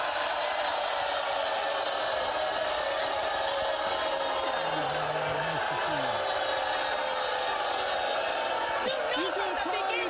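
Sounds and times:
studio audience applauding: 0.0s - 10.0s.

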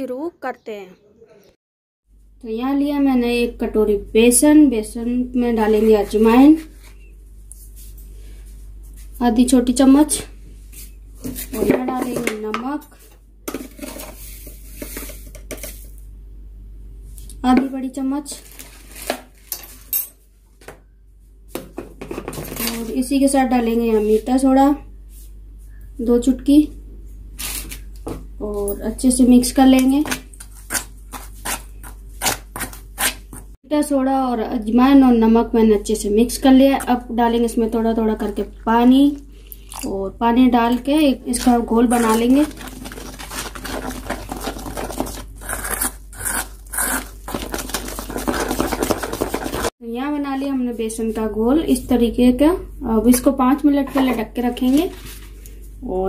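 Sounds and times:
metal spoon stirring batter in bowl: 40.6s - 49.7s.

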